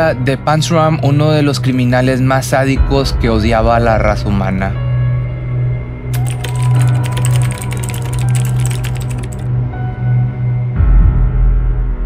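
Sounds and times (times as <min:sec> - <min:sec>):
dark background music drone: 0:00.0 - 0:12.0
typing clicks: 0:06.2 - 0:09.5.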